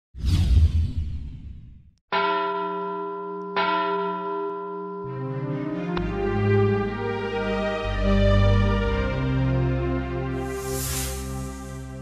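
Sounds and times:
ringing bell-like strikes: 2.1 - 5.8
music: 5.0 - 12.0.

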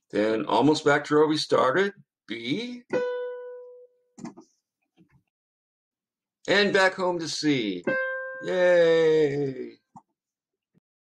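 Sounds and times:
single plucked musical note: 2.9 - 3.9, 7.8 - 8.5.

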